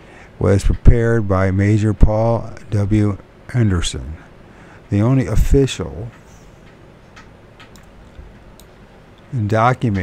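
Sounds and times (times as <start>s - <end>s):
low room hum: 0.0s - 10.0s
computer mouse clicks: 6.1s - 9.3s.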